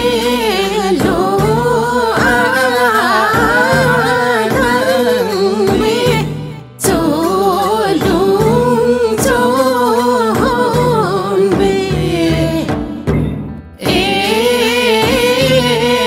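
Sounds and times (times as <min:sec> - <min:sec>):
person singing folk song: 0:00.0 - 0:13.0, 0:13.8 - 0:16.0
instrumental backing with low bass: 0:00.0 - 0:16.0.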